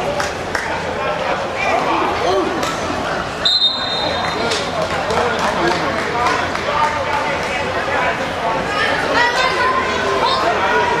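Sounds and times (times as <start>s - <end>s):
people talking and calling out: 0.0s - 11.0s
referee's whistle blast: 3.4s - 4.3s.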